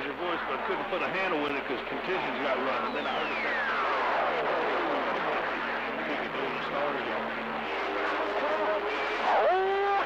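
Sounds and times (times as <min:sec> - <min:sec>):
radio static hiss: 0:01.3 - 0:09.2.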